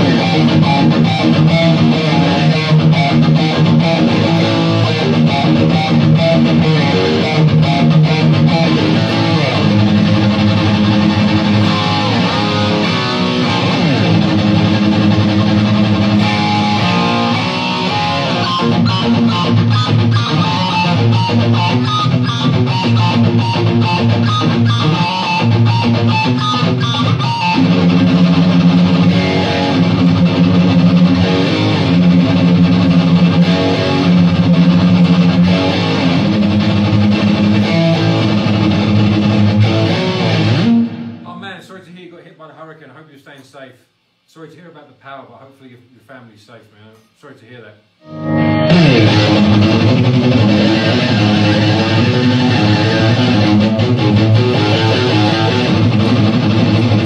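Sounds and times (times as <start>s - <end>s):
electric guitar playing: 0.0s - 41.5s, 48.0s - 57.0s.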